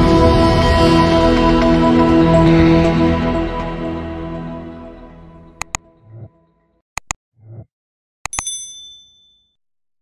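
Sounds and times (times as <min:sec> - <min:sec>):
bright bell ding: 0:08.3 - 0:09.6.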